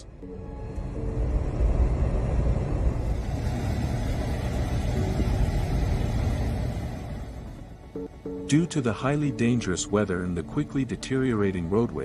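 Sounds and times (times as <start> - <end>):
blizzard wind against car: 0.8 - 8.1.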